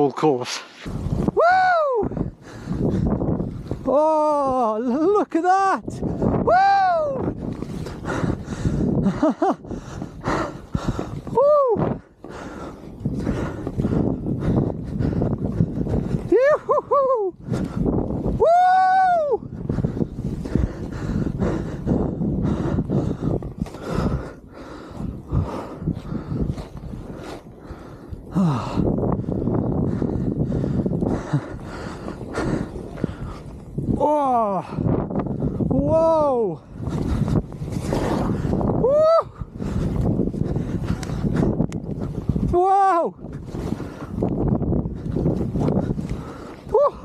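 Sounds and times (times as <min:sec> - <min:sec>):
wind buffeting microphone: 0:00.0 - 0:47.0
skier whooping: 0:01.2 - 0:02.3, 0:06.2 - 0:07.8, 0:11.2 - 0:12.0, 0:16.2 - 0:19.5, 0:38.0 - 0:39.5, 0:46.6 - 0:47.0.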